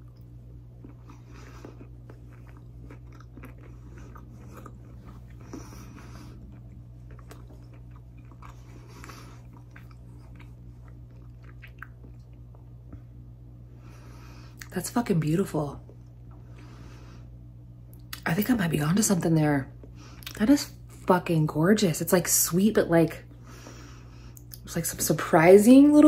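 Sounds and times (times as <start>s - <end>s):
person chewing crunchy snack: 0.0s - 12.8s.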